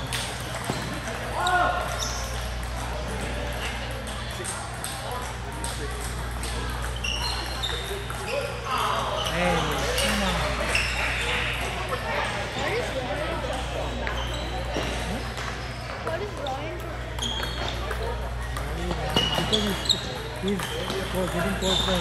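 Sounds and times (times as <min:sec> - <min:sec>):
table tennis balls clicking: 0:00.0 - 0:08.5, 0:15.2 - 0:22.0
background voices talking: 0:00.0 - 0:22.0.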